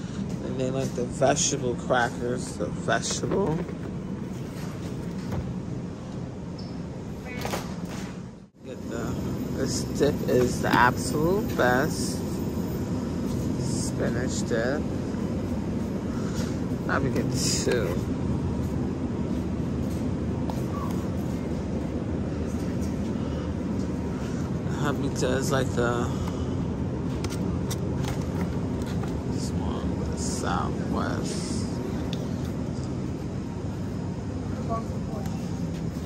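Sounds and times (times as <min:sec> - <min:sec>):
steady low rumble: 0:08.3 - 0:36.0.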